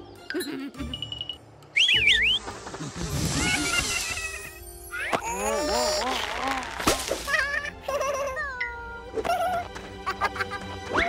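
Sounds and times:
cartoon whistle sliding up and down: 1.8s - 2.4s
low musical bed: 4.4s - 11.0s.

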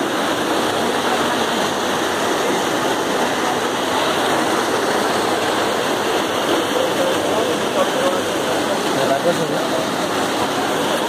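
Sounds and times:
water rushing through channels: 0.0s - 11.0s.

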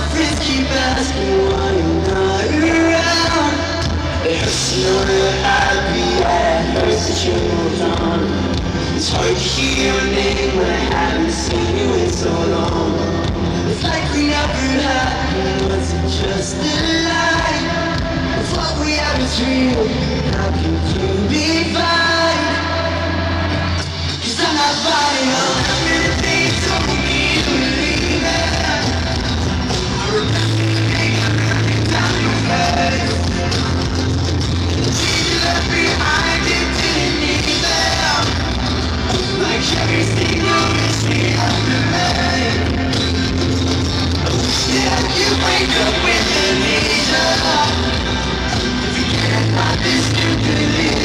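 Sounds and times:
live rock band playing a ballad: 0.0s - 51.0s.

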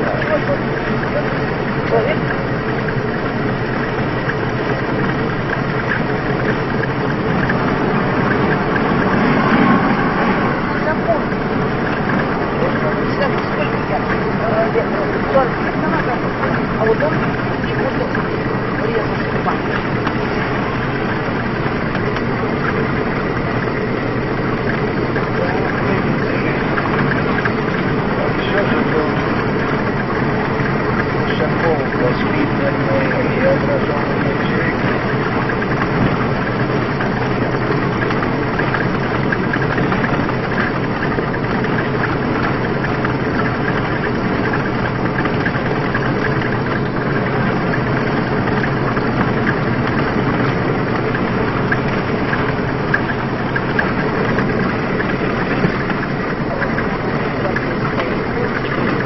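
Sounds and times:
car engine and road noise: 0.0s - 59.0s
indistinct voices: 0.0s - 59.0s.

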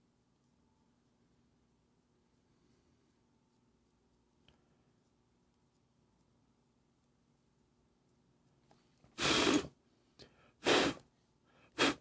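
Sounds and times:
person blowing puffs of air: 9.1s - 12.0s.

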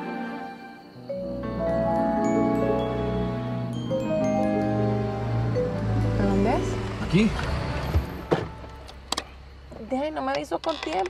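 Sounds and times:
soft music: 0.0s - 9.0s
car braking to a stop: 4.4s - 9.4s.

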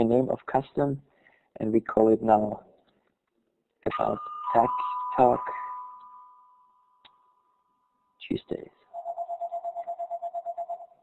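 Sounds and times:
rapidly pulsing electronic tone: 8.9s - 11.0s.

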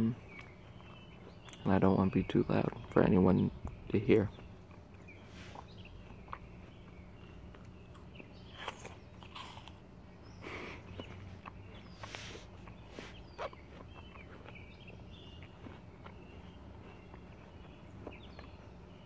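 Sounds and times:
apple being chewed: 0.0s - 19.0s
faint bird chirps: 0.0s - 19.0s.

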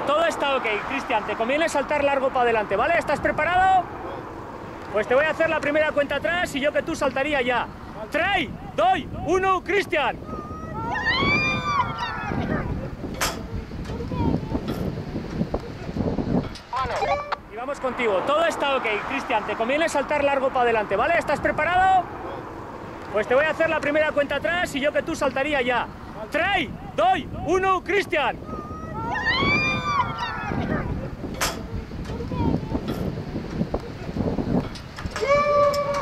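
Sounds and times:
wind buffeting microphone: 0.0s - 36.0s
person yelling: 10.2s - 13.0s, 16.8s - 17.4s, 28.4s - 31.2s, 35.2s - 36.0s.

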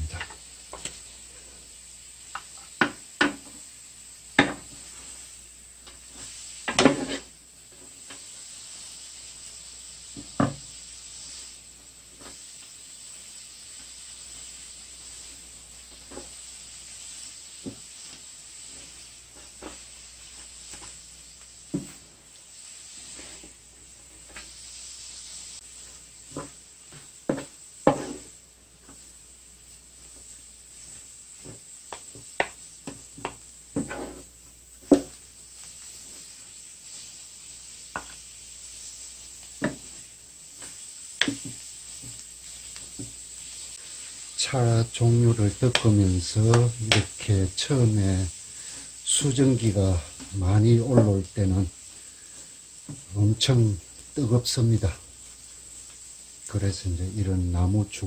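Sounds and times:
leaves sizzling in hot skillet: 0.0s - 58.0s
wooden spatulas knocking on pan: 2.8s - 3.4s, 27.3s - 28.2s, 31.9s - 34.2s, 34.8s - 35.2s.

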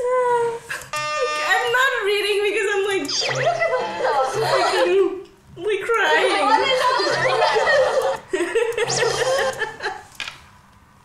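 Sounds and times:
women talking excitedly: 1.5s - 7.5s
electronic sound effect: 3.0s - 4.9s, 8.8s - 9.5s.

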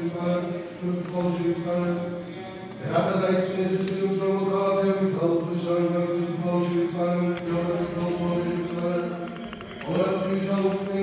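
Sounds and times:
man chanting: 2.8s - 11.0s.

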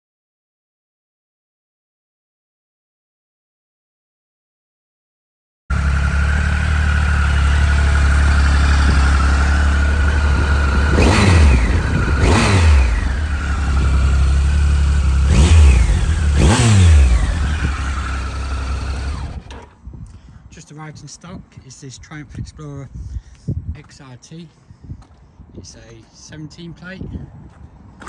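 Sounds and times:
motorcycle engine idling and revving: 5.7s - 19.8s.

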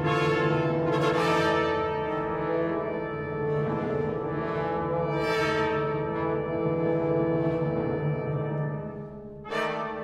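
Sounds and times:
orchestral brass chords: 0.0s - 10.0s.

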